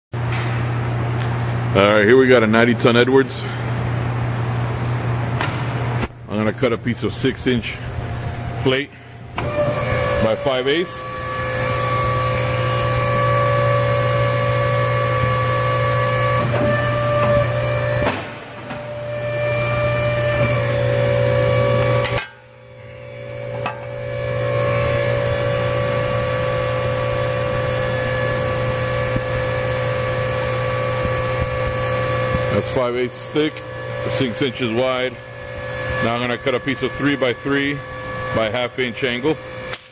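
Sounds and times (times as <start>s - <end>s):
hydraulic pump hum and whine: 0.2s - 39.9s.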